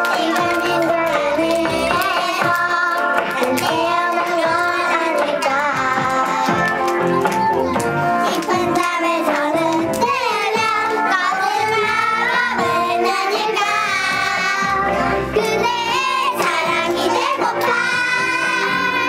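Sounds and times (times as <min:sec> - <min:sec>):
girls singing together: 0:00.0 - 0:06.7, 0:08.2 - 0:19.0.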